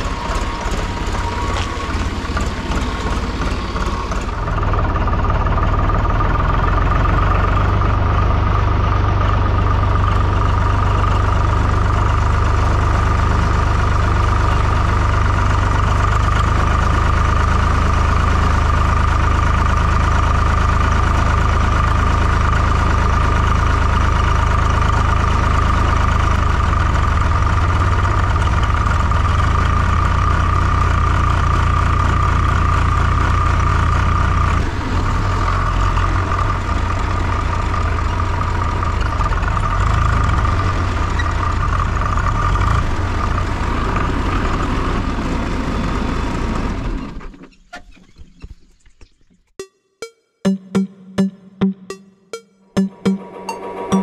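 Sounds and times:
tractor diesel engine running: 0.0 - 48.1, 52.9 - 54.0.

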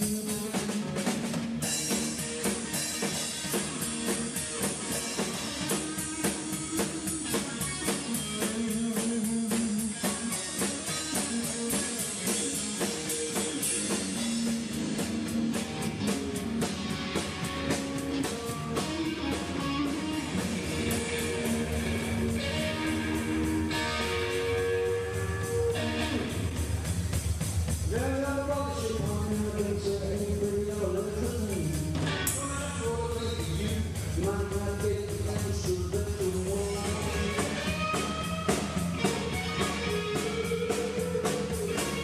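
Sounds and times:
bass guitar: 0.0 - 42.0
drum kit beat: 0.0 - 42.0
electric guitar: 0.0 - 42.0.

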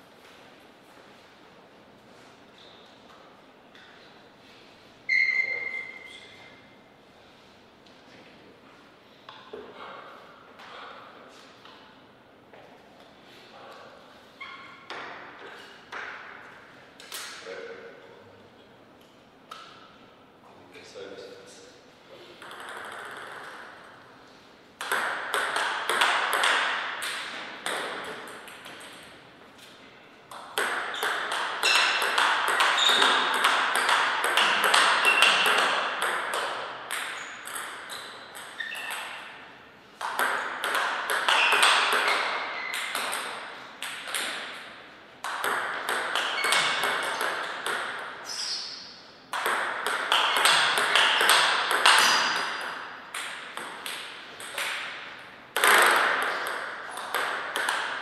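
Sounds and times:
table tennis ball clicking: 22.4 - 23.6.

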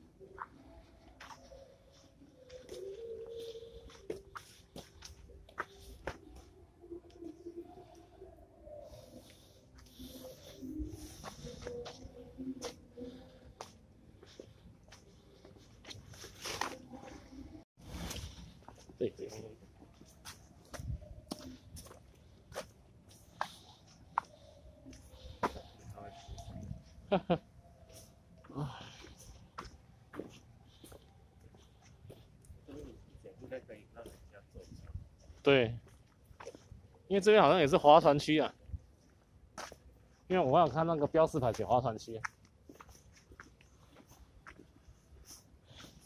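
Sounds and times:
low cooing bird calls: 0.2 - 4.8, 5.6 - 13.6
footsteps on stone path: 0.2 - 6.5, 8.9 - 27.0, 27.9 - 32.6, 34.0 - 37.0, 39.0 - 46.0.

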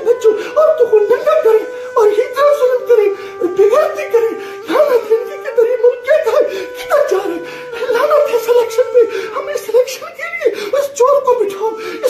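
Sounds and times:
man sobbing and wailing: 0.0 - 12.0.

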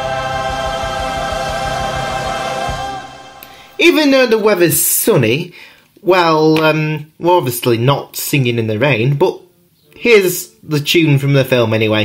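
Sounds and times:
choir holding a chord: 0.0 - 3.8.

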